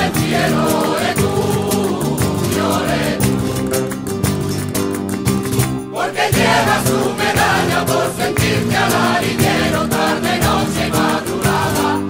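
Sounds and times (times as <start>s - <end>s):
choir singing: 0.0s - 4.0s, 5.9s - 12.0s
instrumental accompaniment: 0.0s - 12.0s.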